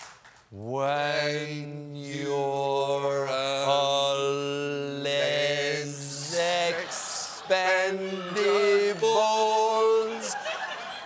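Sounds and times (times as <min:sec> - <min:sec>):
two men singing: 0:00.7 - 0:10.4.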